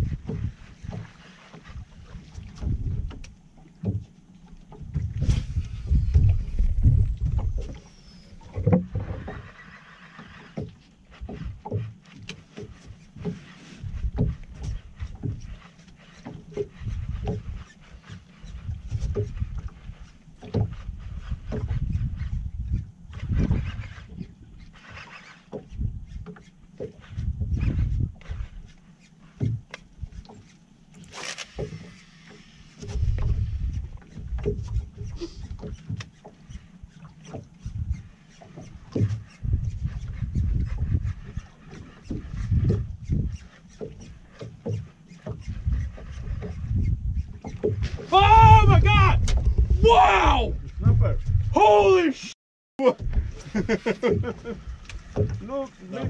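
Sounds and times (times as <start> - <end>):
wind buffeting microphone: 0.0 - 1.1, 1.7 - 3.3, 4.8 - 9.5, 16.7 - 17.7, 18.4 - 24.6, 27.0 - 28.6, 32.8 - 36.0, 37.6 - 38.1, 38.7 - 52.0, 53.0 - 56.0
water slapping against hull: 0.0 - 56.0.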